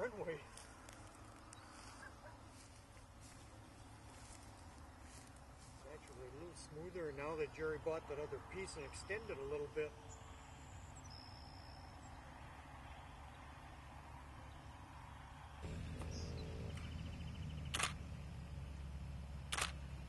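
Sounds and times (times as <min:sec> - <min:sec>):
aircraft engine idling: 0:00.3 - 0:20.0
sharp clicks: 0:17.7 - 0:18.0, 0:19.5 - 0:19.8.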